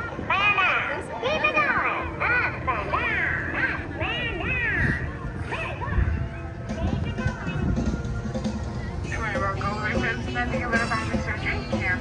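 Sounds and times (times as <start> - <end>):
music with voice: 0.0 - 12.0.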